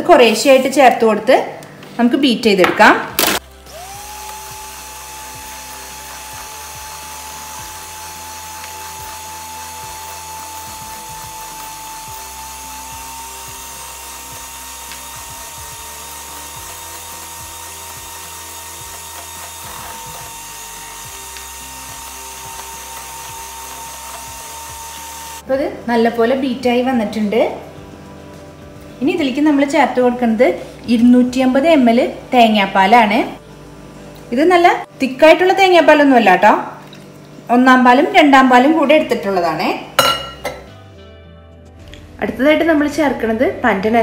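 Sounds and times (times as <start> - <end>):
electric hand mixer whine: 3.3 - 25.5.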